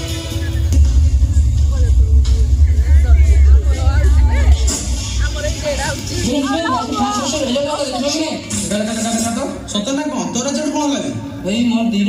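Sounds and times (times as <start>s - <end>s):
film soundtrack music: 0.0s - 11.5s
voices: 0.0s - 12.0s
heavy booming bass rumble: 0.4s - 7.4s.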